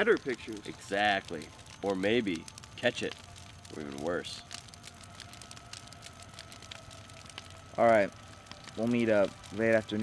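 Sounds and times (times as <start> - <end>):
faint steady tones: 0.0 - 10.0
low background hiss: 0.0 - 10.0
steady low hum: 0.0 - 10.0.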